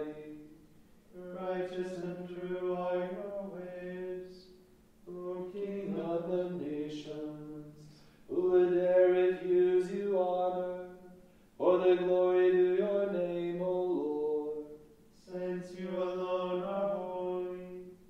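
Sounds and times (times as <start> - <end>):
voices chanting psalmody: 0.0 - 18.0.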